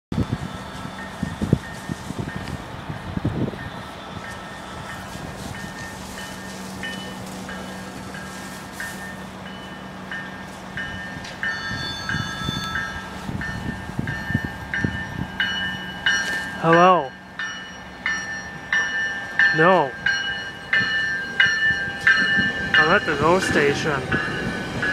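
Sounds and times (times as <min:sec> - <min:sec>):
station bell ringing: 0:00.1 - 0:24.9.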